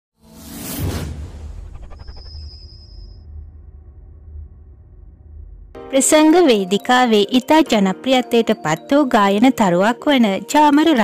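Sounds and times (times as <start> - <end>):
whoosh sound effect: 0.2 - 5.8
deep bass rumble: 0.6 - 5.9.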